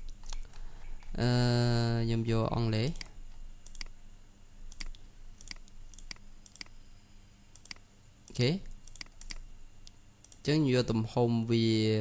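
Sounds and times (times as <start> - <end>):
computer mouse clicking: 0.0 - 1.2, 2.8 - 3.9, 4.7 - 6.8, 7.5 - 10.5.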